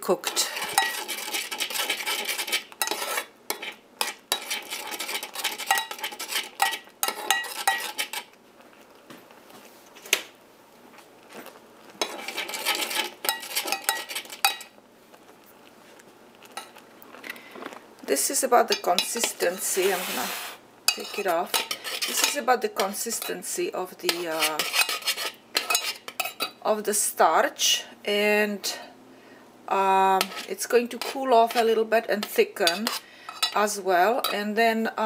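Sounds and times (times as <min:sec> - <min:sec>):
spoon scraping a saucepan: 0:00.1 - 0:08.4, 0:12.0 - 0:14.7, 0:18.2 - 0:26.6, 0:30.1 - 0:34.5.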